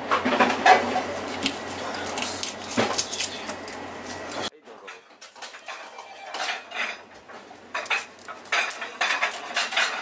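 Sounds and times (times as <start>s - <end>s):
knife scraping and cutting fish: 1.2s - 4.4s.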